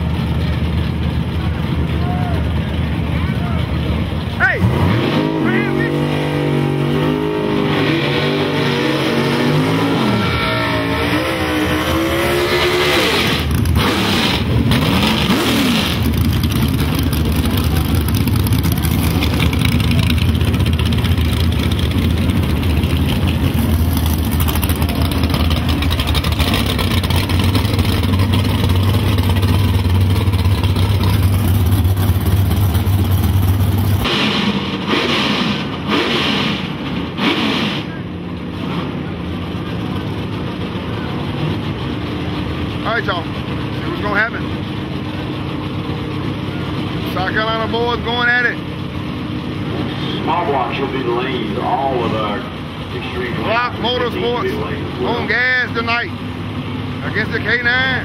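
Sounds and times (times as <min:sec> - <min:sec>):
drag car engines revving: 0:00.0 - 0:58.0.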